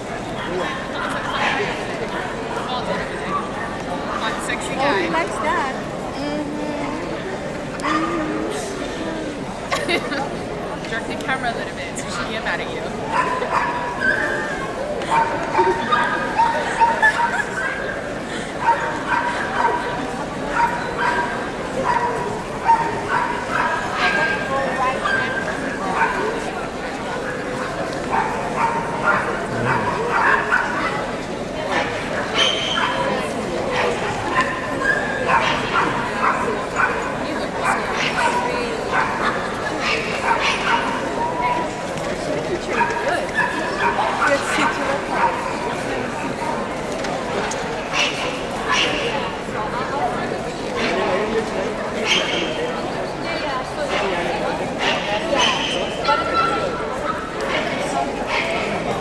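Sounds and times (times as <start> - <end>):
crowd chatter: 0.0 - 59.0
dogs yipping and barking: 13.1 - 18.0, 20.5 - 26.3, 28.1 - 31.0, 33.8 - 41.8, 54.8 - 56.8.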